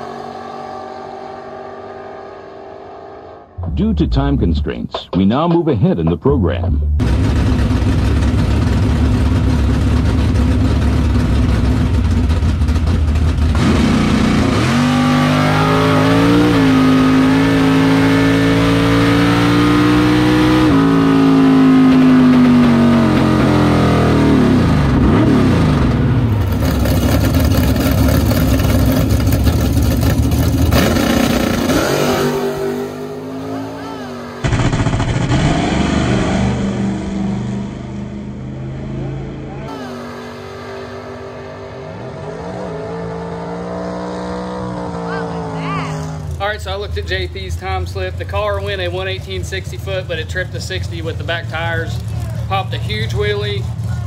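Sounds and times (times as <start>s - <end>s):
race car engine revving: 6.7s - 54.0s.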